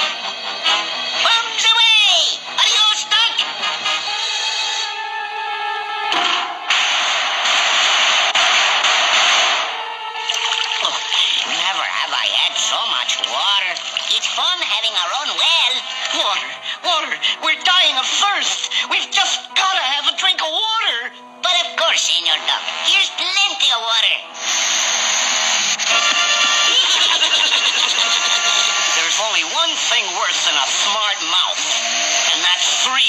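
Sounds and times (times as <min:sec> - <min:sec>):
orchestral music: 0:00.0 - 0:33.0.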